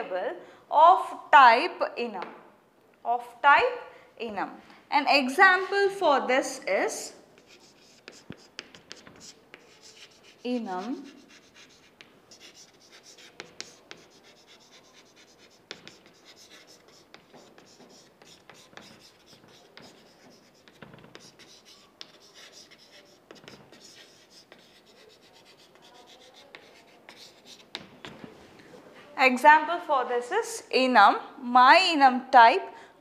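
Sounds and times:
chalk scratching on chalkboard: 7.4s - 28.2s
chalk tapping on chalkboard: 7.4s - 28.2s.

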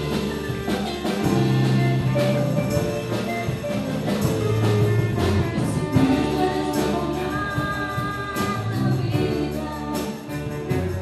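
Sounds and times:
live band playing: 0.0s - 11.0s
person singing: 5.0s - 11.0s.

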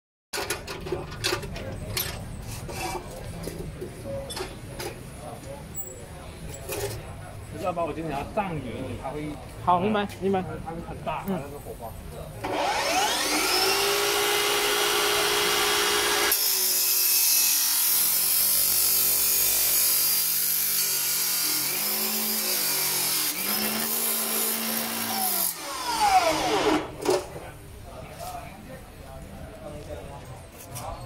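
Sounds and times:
cut-off saw motor whine: 12.4s - 16.4s, 25.0s - 26.9s.

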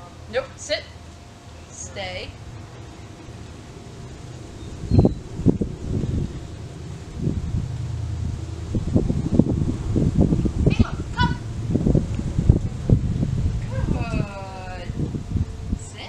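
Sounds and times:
high honking call: 0.0s - 16.0s
wind buffeting microphone: 0.0s - 16.0s.

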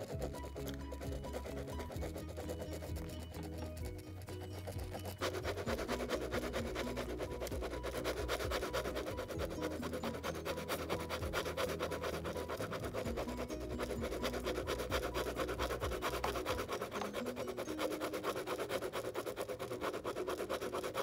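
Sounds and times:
pen scratching on paper: 0.0s - 21.0s.

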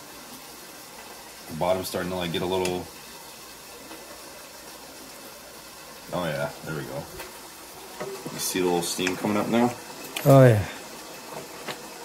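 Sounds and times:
faint hiss of food heating: 0.0s - 12.0s.

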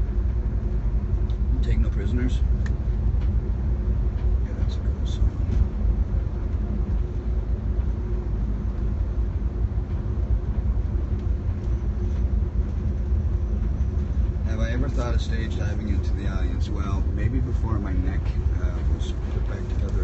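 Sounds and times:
bus engine hum: 0.0s - 20.0s
road noise: 0.0s - 20.0s.

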